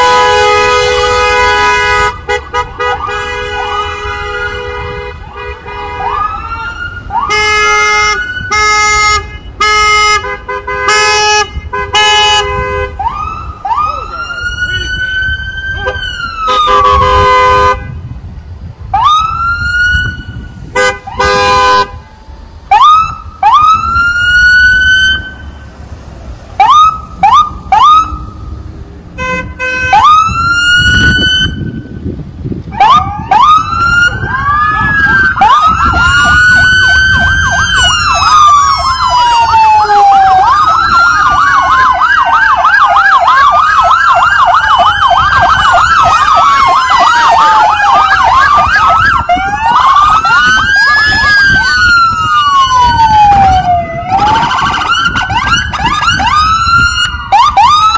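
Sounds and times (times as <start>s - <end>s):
car horn honks: 0.0s - 6.2s, 7.3s - 13.0s, 15.8s - 18.0s, 20.7s - 22.2s, 29.2s - 30.1s
police sirens whooping and wailing: 0.0s - 17.7s, 18.6s - 57.9s.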